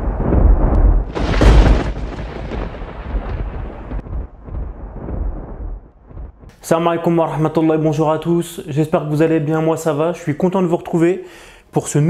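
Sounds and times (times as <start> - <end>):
rolling thunder rumble: 0.0 - 6.5.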